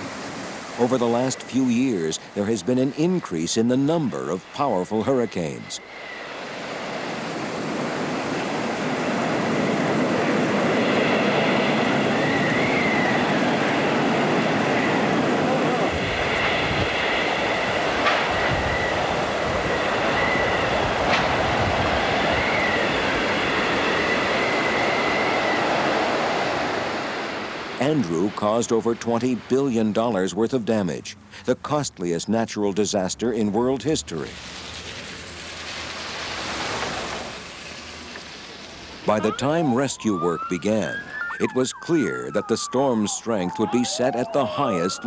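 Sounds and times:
wind whistling through wires: 4.0 - 29.4, 34.2 - 45.0
strong wind blowing: 5.6 - 28.5
wind gusts buffeting microphone: 6.1 - 29.6.

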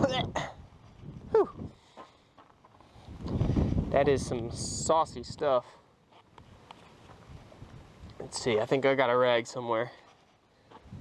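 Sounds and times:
man's wordless exclamation: 1.3 - 1.6.

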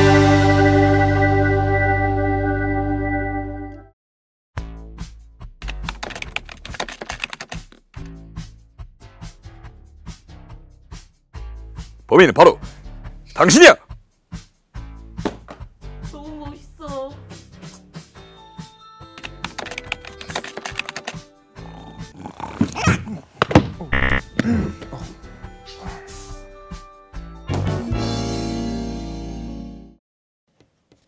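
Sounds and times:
background music: 0.0 - 3.9, 4.6 - 22.3, 23.3 - 30.0
rapid keyboard typing: 5.6 - 7.9, 19.2 - 21.2.

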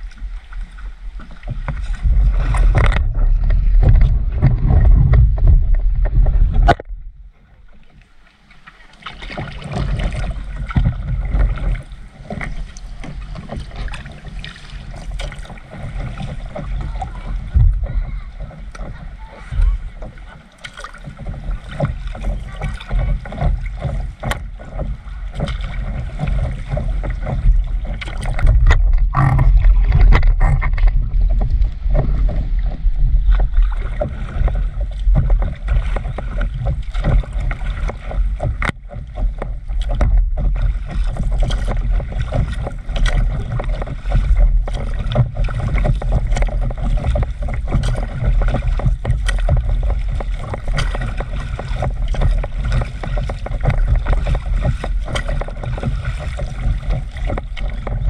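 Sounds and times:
water splashing and rushing: 0.0 - 58.0
heavy low rumble: 1.6 - 7.7, 15.0 - 20.5, 21.9 - 58.0.

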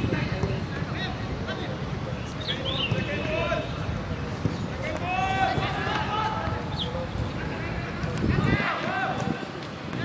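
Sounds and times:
footballers shouting calls: 0.1 - 10.0.

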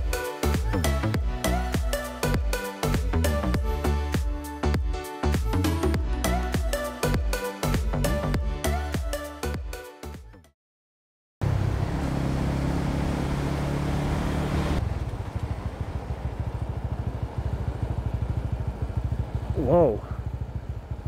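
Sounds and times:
motorcycle engine running: 11.4 - 21.0.

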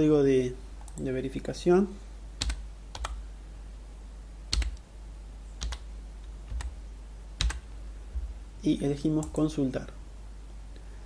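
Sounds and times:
steady low hum: 0.0 - 11.0
computer keyboard keystrokes: 2.4 - 3.2, 4.5 - 4.8, 5.6 - 5.8, 6.5 - 6.8, 7.4 - 7.6.

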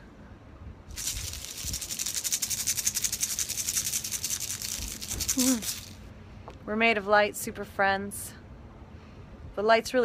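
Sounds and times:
hand rattle shaken quickly: 0.9 - 6.0.

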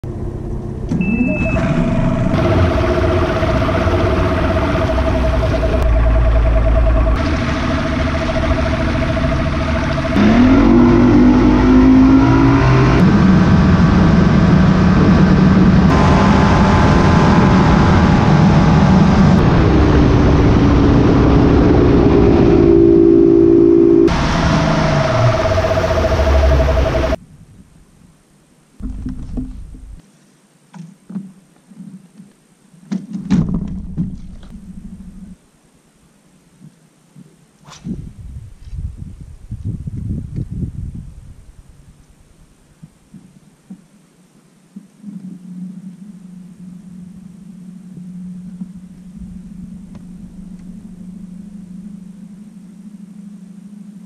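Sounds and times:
outboard motor running: 0.0 - 27.2, 46.6 - 53.3.

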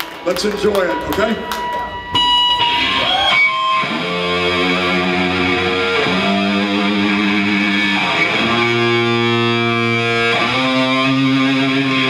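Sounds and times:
loud electric guitars: 0.0 - 12.0.

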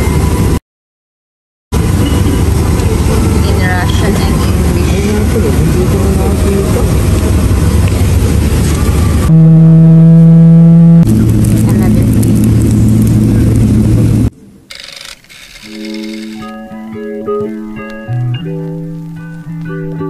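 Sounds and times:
airliner cabin noise: 1.8 - 16.7
plucked guitar music: 15.8 - 20.0.

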